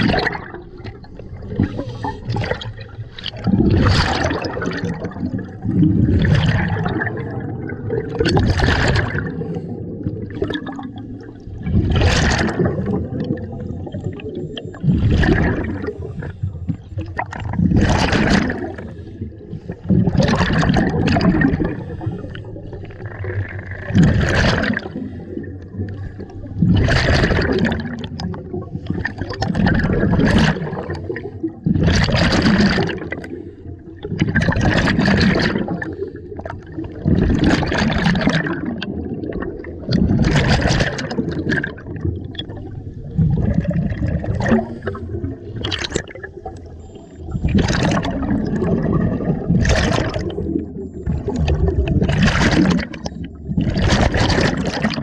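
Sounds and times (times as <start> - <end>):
bubbles rushing and gurgling: 0.0 - 55.0
scuba regulator breathing underwater: 1.4 - 2.7, 18.4 - 23.2.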